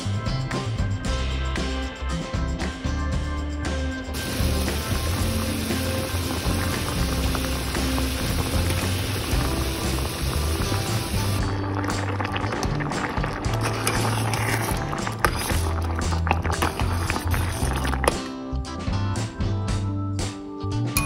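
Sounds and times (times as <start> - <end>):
background music: 0.0 - 21.0
water boiling: 4.2 - 18.2.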